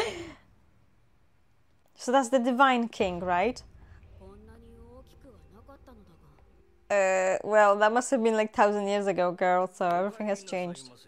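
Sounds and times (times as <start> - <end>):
woman laughing and sighing: 0.0 - 0.4.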